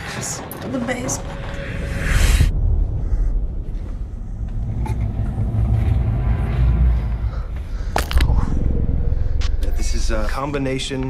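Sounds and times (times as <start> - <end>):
deep rumbling drone: 0.0 - 11.0.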